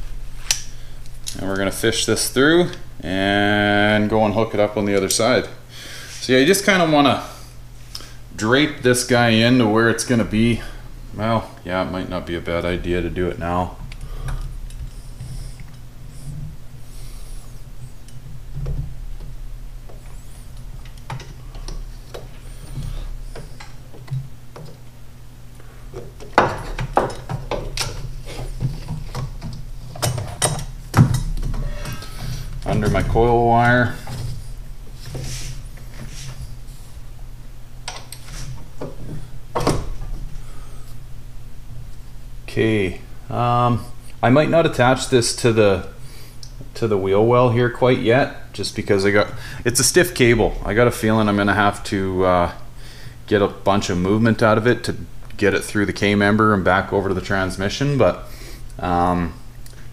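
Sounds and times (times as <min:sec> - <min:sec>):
steady low hum: 0:00.0 - 0:59.9.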